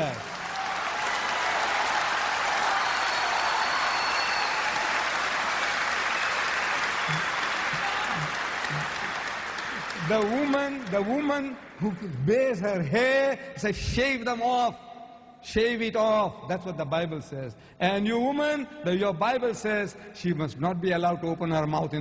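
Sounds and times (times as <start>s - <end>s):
audience applauding: 0.0s - 12.1s.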